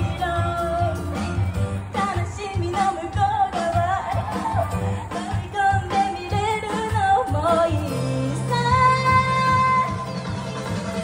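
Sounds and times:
instrumental backing track: 0.0s - 11.0s
woman singing pop song: 0.0s - 11.0s.

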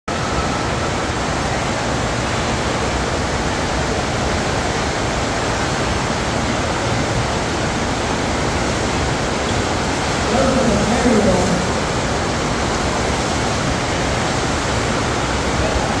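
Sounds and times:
rush of pumped water: 0.1s - 16.0s
person calling out: 10.2s - 12.0s.

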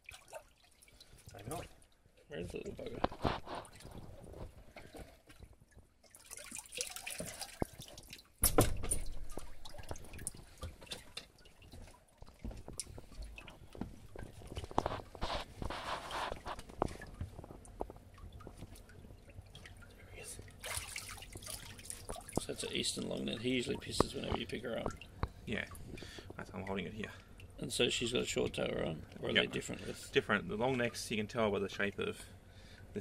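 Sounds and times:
water splashing and dripping: 0.0s - 29.3s.

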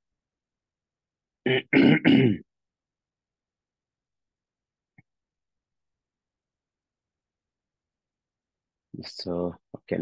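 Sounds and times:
man clearing his throat: 1.5s - 2.5s.

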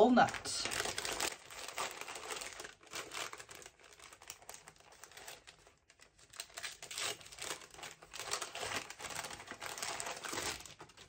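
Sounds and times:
gift wrapping crinkling: 0.0s - 11.0s.

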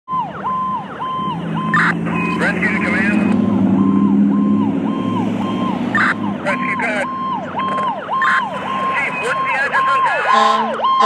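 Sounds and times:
electronic siren yelping: 0.1s - 11.0s
long low truck horn blast: 10.3s - 10.8s.

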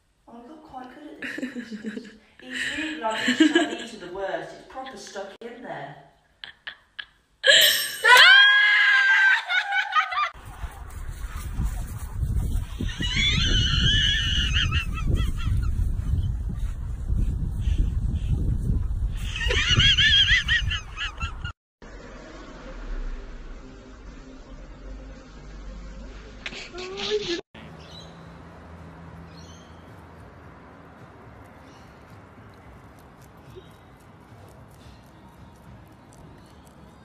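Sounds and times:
wind rumble on microphone: 10.4s - 21.5s
low hum: 21.8s - 26.7s.

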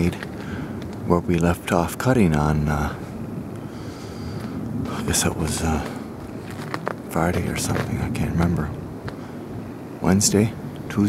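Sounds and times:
wind noise on microphone: 0.0s - 11.0s.

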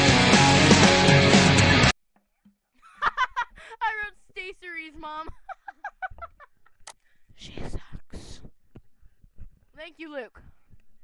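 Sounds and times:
child laughing: 2.8s - 3.8s.

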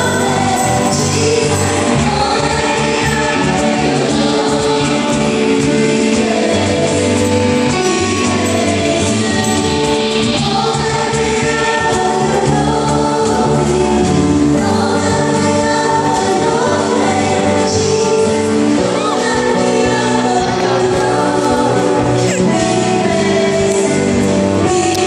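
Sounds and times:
group of voices singing: 0.0s - 25.0s.

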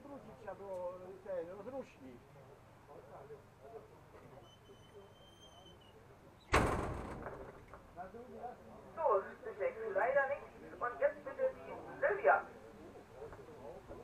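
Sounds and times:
men talking at a distance: 0.0s - 6.5s, 7.4s - 14.0s
door banging shut: 6.5s - 7.7s.

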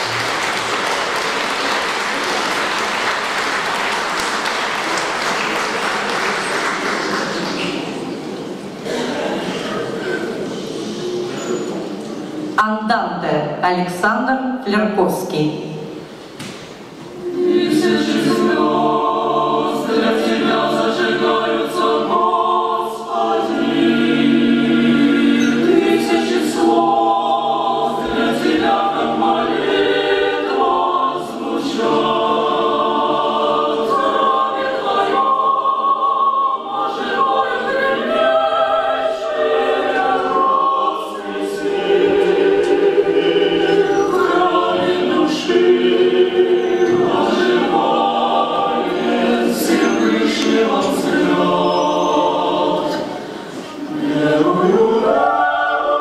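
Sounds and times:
mixed choir singing: 0.0s - 12.6s, 16.0s - 56.0s.

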